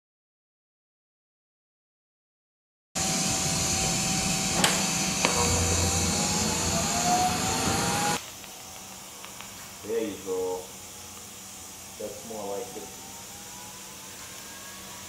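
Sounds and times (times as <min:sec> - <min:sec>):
welding arc hissing: 0:03.0 - 0:15.0
sharp crackles: 0:08.2 - 0:15.0.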